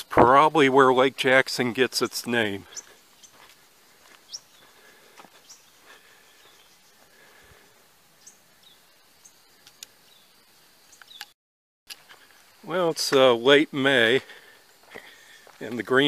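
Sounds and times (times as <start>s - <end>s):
footsteps on dirt trail: 2.4s - 8.8s, 11.9s - 16.0s
high bird chirps: 2.6s - 3.4s, 4.2s - 7.0s, 8.2s - 11.4s.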